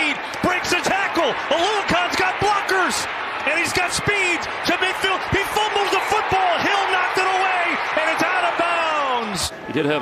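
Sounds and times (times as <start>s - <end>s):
excited announcer commentating: 0.0s - 10.0s.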